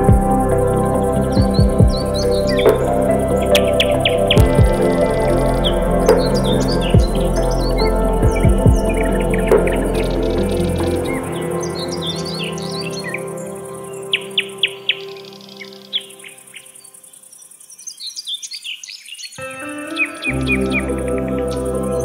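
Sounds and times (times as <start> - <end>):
low bass: 0.0 - 12.1
calm ambient music: 0.0 - 18.3, 19.4 - 22.0
birds chirping: 0.0 - 22.0.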